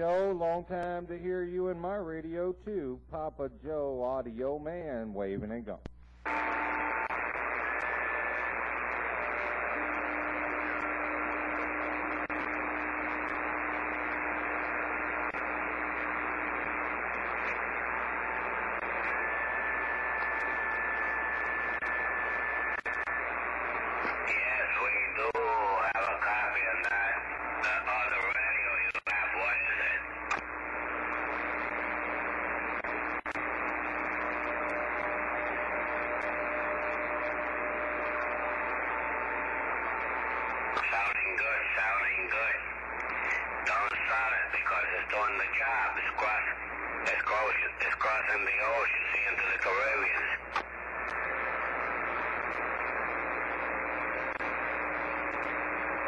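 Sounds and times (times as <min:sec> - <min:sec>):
radio static hiss: 0:00.0 - 0:56.0
garbled radio voices: 0:06.3 - 0:56.0.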